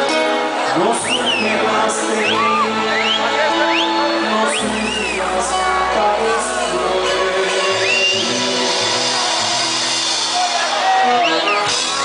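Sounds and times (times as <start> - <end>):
drums: 0.0 - 12.0
electric bass: 0.0 - 12.0.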